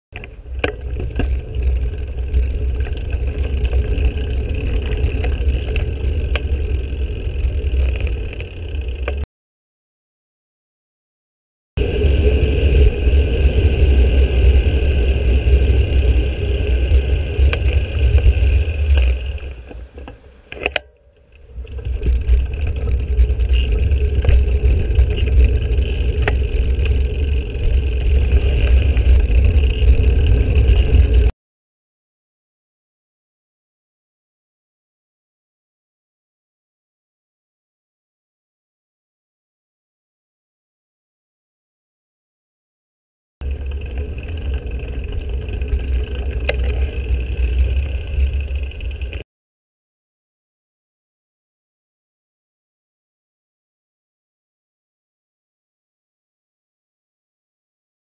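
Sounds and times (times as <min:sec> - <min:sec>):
bicycle road noise rumble: 0:00.1 - 0:09.3, 0:11.8 - 0:31.3, 0:43.4 - 0:49.2
wind buffeting microphone: 0:21.4 - 0:31.3.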